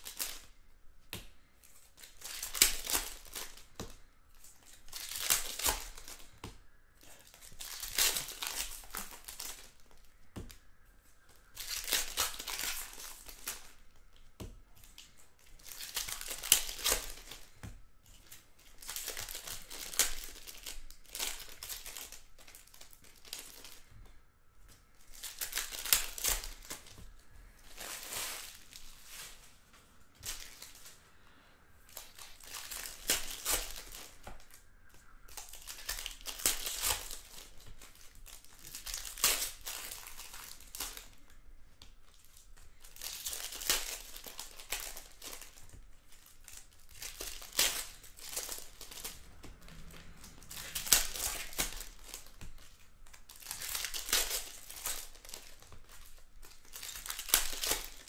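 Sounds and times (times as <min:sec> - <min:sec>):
foil wrappers tearing and crinkling: 0:00.0 - 0:00.5, 0:01.9 - 0:06.3, 0:07.0 - 0:10.1, 0:11.4 - 0:14.2, 0:14.8 - 0:23.8, 0:25.0 - 0:27.0, 0:27.6 - 0:29.5, 0:30.2 - 0:31.0, 0:31.9 - 0:34.6, 0:35.3 - 0:41.4, 0:42.1 - 0:58.0.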